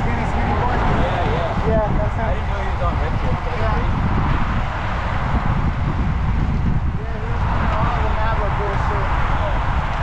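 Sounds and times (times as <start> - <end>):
wind buffeting microphone: 0.0 - 10.0
faint voices of riders: 6.9 - 10.0.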